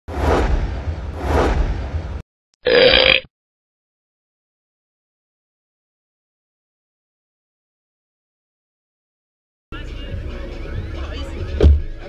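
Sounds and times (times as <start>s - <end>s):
rumbling swells: 0.1s - 2.2s.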